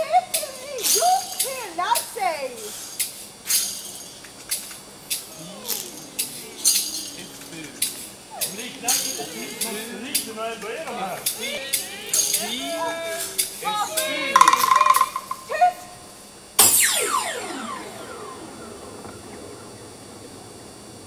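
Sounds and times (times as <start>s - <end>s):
voices calling out: 0.0s - 20.4s
high held cry: 5.2s - 16.0s
loud crash falling in pitch: 16.6s - 19.1s.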